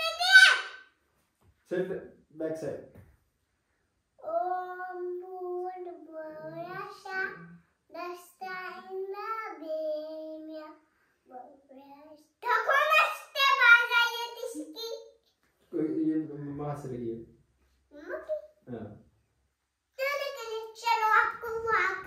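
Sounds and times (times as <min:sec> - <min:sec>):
girl singing: 0:04.2 - 0:10.8.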